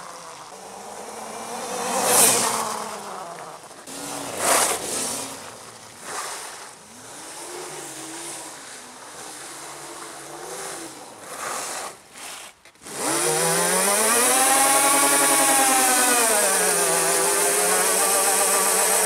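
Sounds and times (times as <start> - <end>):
electric motor whining: 12.8 - 19.0.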